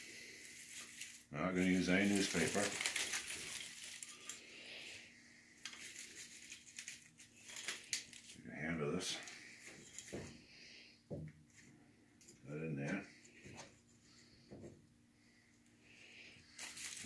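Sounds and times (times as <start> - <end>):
kindling sticks clattering: 5.6 - 8.4.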